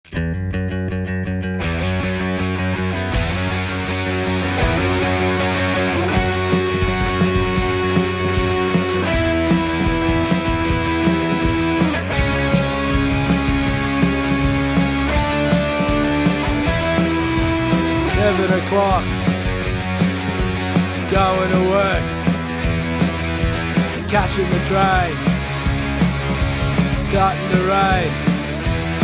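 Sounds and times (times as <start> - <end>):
electric bass: 0.0 - 29.0
electric guitar chords: 0.1 - 29.0
steady drum beat: 3.2 - 29.0.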